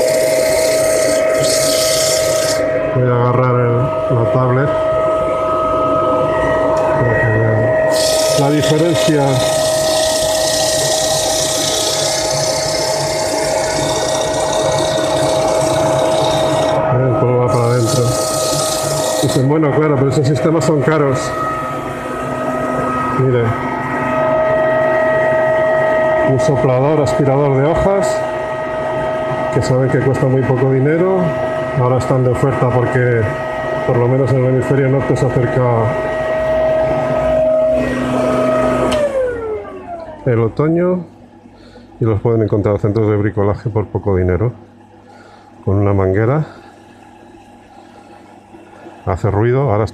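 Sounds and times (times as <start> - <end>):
leaf blower vacuum whine: 0.0 - 40.4.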